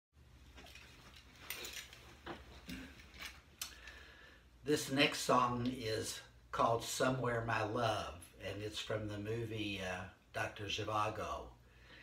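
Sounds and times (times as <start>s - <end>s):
low steady hum: 0.2s - 12.0s
clicks and rustles of movement: 0.4s - 4.0s.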